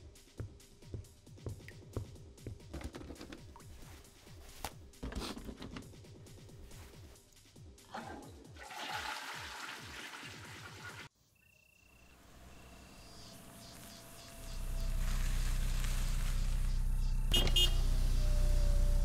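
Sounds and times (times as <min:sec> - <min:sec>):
toilet flushing: 0:07.9 - 0:11.1
car engine idling: 0:12.2 - 0:19.0.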